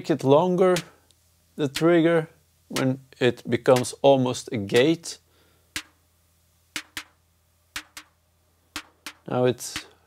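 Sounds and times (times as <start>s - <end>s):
electronic snare double hits: 5.8s - 6.0s, 6.8s - 8.2s, 8.8s - 9.9s.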